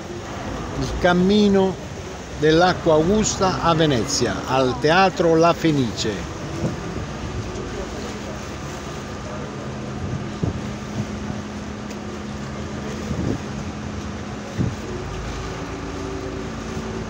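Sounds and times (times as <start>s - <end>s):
boat engine droning: 0.0s - 17.0s
wake rushing along hull: 0.0s - 17.0s
wind: 0.0s - 17.0s.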